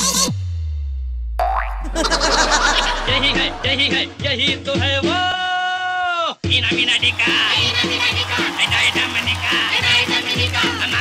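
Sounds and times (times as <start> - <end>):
low bass boom: 0.4 - 5.0
rising boing-like whistle: 1.4 - 4.2
warbling cartoon effects: 1.4 - 4.2
dance track: 1.7 - 4.7.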